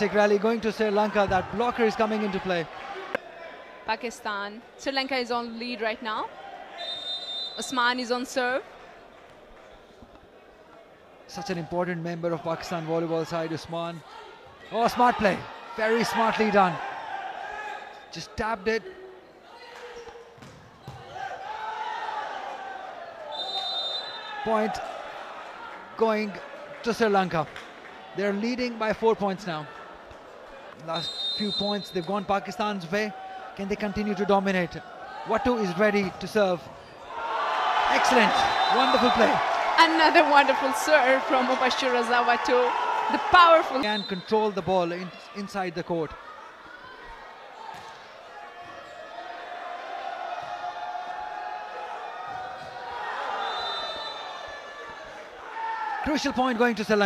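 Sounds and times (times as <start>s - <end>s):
crowd in sports hall: 0.0s - 57.0s.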